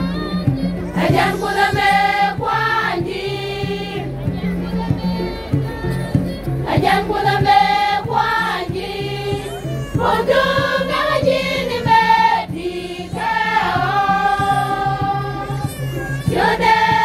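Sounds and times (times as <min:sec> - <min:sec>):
women's choir singing gospel: 0:00.0 - 0:17.0.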